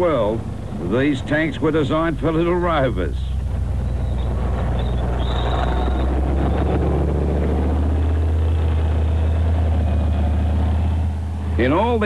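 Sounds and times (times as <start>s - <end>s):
tank diesel engine running: 0.0s - 12.0s.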